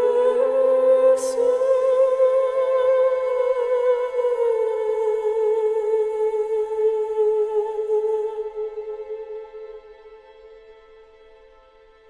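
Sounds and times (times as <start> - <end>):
woman singing a long note: 0.0 - 9.8.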